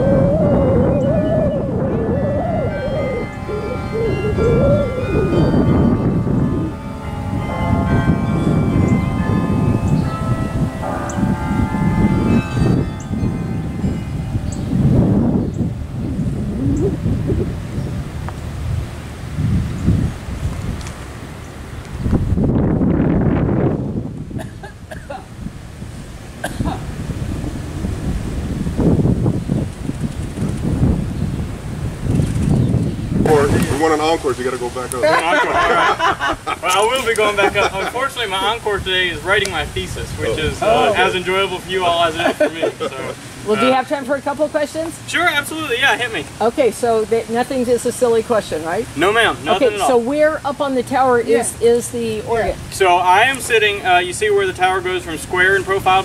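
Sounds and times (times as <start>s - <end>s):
carillon bells ringing a tune: 0.0s - 15.8s
wind rumbling on microphone: 0.0s - 56.0s.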